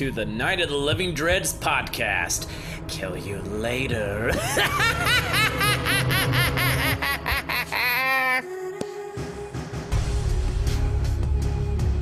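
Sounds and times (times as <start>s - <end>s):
high-pitched cackling laugh: 4.4s - 8.5s.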